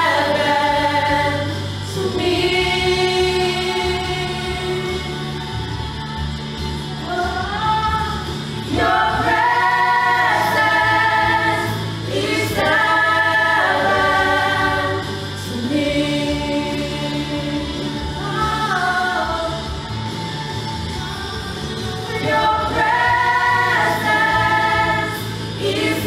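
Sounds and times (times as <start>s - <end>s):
choir singing gospel in harmony: 0.0s - 26.0s.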